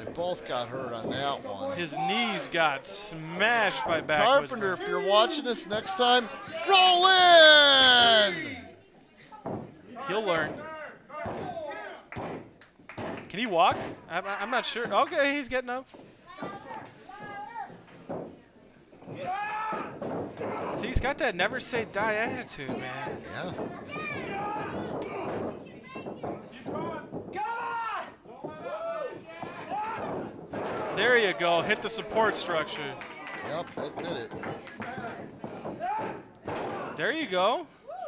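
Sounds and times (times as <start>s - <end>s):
people shouting: 5.7s - 8.8s, 19.1s - 20.9s, 23.9s - 25.5s, 27.3s - 32.5s
shouted voice calls: 6.4s - 8.7s.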